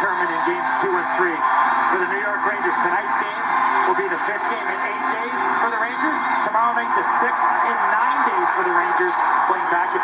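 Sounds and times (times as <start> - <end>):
announcer talking through tv speaker: 0.0 - 10.0.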